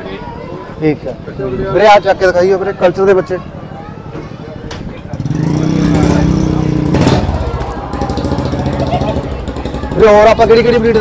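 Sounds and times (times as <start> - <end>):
vehicle engine running: 5.2 - 11.0.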